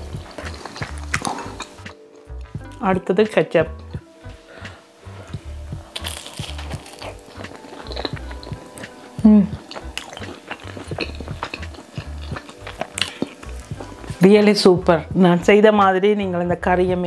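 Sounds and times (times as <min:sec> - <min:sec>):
crunchy pastry being chewed: 0:00.0 - 0:02.8, 0:05.8 - 0:14.2
background music with beat: 0:00.0 - 0:17.0.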